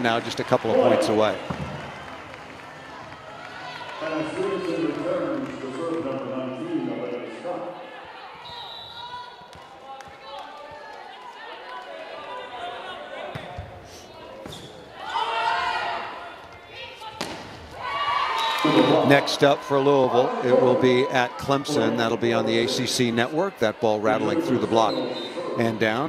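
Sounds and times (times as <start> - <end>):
crowd and player voices: 0.0 - 26.0
volleyball hits echoing: 1.3 - 2.0, 17.2 - 17.7.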